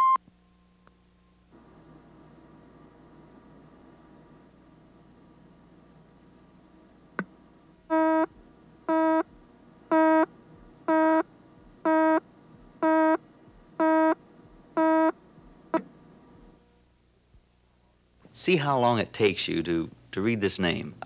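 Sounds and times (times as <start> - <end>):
faint tape hiss: 0.0 - 21.0
buzzy countdown beeps: 7.9 - 8.3, 8.9 - 9.2, 9.9 - 10.3, 10.9 - 11.2, 11.9 - 12.2, 12.8 - 13.2, 13.8 - 14.2, 14.8 - 15.1.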